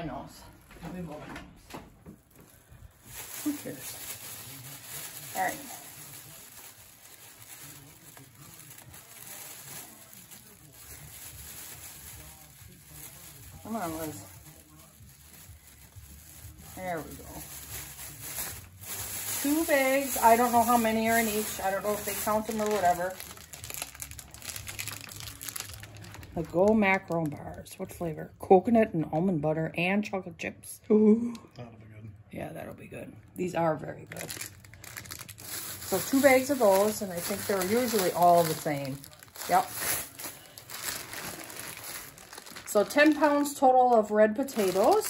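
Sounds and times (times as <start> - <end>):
plastic bag rustling and crinkling: 2.2 - 28.0, 34.1 - 45.0.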